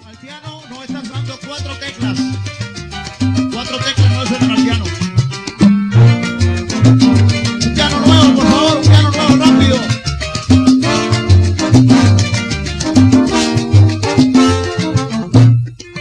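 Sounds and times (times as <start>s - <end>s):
live salsa band: 0.0s - 16.0s.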